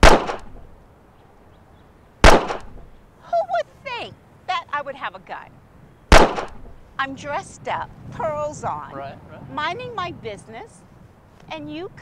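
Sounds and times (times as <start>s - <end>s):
pistol shot: 0.0s - 0.7s, 2.2s - 2.9s, 6.1s - 6.8s.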